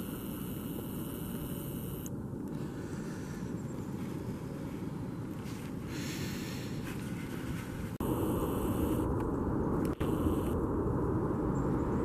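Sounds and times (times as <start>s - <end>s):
wind buffeting microphone: 7.6s - 12.0s.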